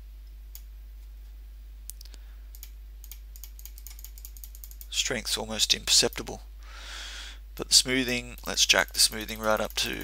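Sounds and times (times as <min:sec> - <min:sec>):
steady low hum: 0:00.0 - 0:10.0
computer mouse clicks: 0:01.9 - 0:04.9.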